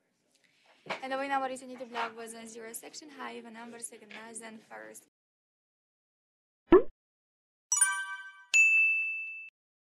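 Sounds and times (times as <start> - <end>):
bright ding: 7.7 - 9.5
ringing chime: 7.7 - 9.5.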